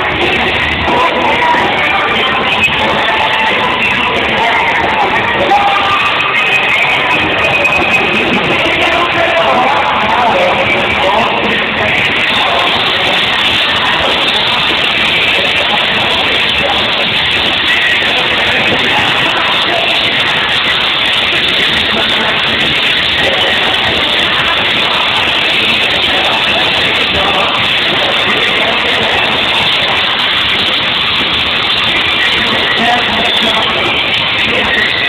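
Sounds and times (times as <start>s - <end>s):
live pop-rock band: 0.0s - 35.0s.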